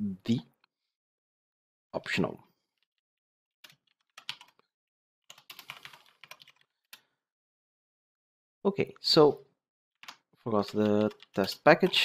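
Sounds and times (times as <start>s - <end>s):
typing on computer keyboard: 3.6s - 4.6s, 5.3s - 6.7s, 10.0s - 12.0s.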